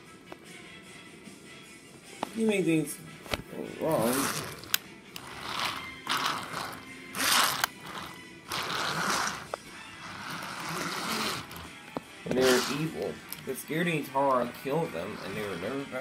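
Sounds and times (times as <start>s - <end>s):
wooden toy trains scraping: 3.8s - 11.7s, 12.3s - 13.2s, 14.4s - 16.0s.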